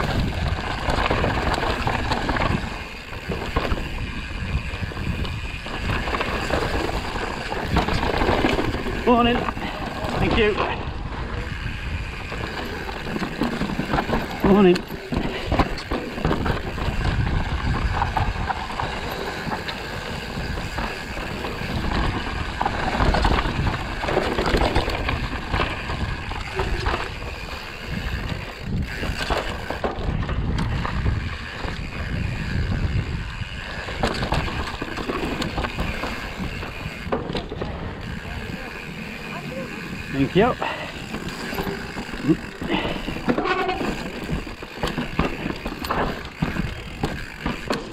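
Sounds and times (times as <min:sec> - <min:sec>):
wind buffeting microphone: 0:00.0 - 0:47.8
bike rattling and knocking: 0:00.0 - 0:47.9
bike tyres rolling over stone: 0:00.0 - 0:47.9.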